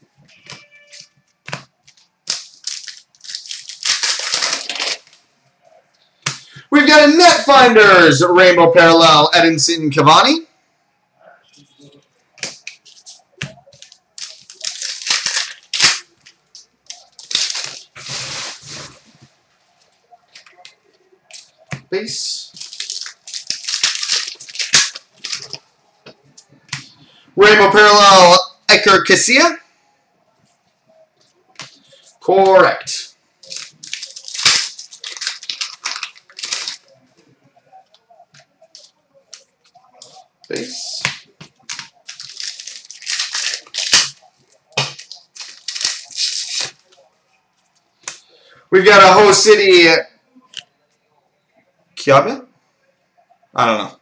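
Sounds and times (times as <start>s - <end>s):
trading cards rustling: 0.4s - 5.2s, 12.4s - 19.2s, 20.3s - 25.6s, 33.4s - 37.0s, 38.7s - 47.0s.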